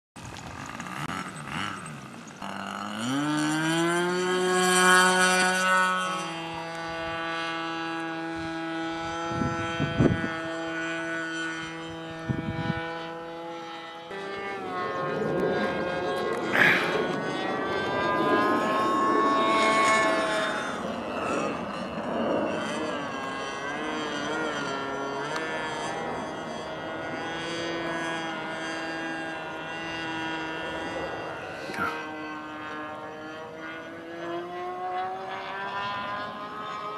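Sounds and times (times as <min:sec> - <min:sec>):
model plane engine whine: 0:00.2 - 0:36.9.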